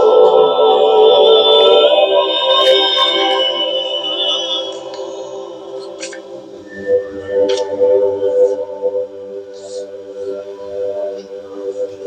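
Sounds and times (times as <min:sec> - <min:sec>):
choir holding a chord: 0:00.0 - 0:11.4.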